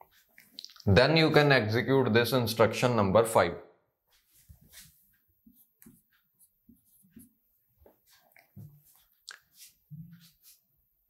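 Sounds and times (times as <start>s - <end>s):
marker writing on whiteboard: 4.1s - 10.7s.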